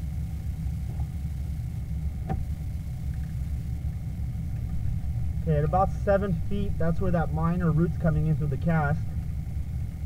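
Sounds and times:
faint high whine: 0:00.0 - 0:10.0
low engine-like rumble: 0:00.0 - 0:10.0.

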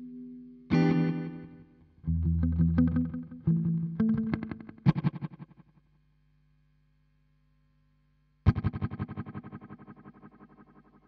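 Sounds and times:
electric guitar chords with echo: 0:00.0 - 0:05.6, 0:08.5 - 0:11.0.

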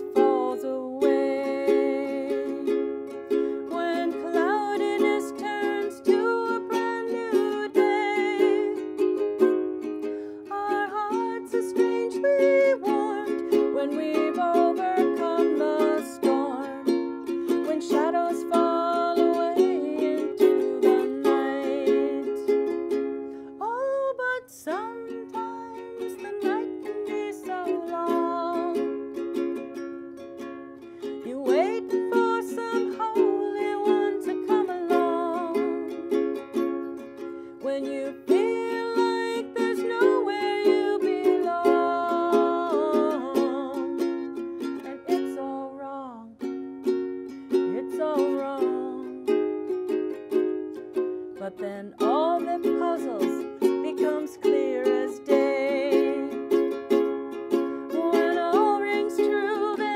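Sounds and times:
woman singing: 0:00.0 - 0:29.3, 0:31.0 - 0:59.9
ukulele strumming: 0:00.0 - 0:59.9.

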